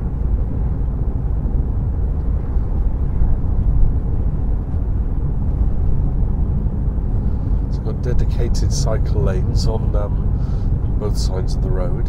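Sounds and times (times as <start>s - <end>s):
car cabin road and engine rumble: 0.0s - 12.0s.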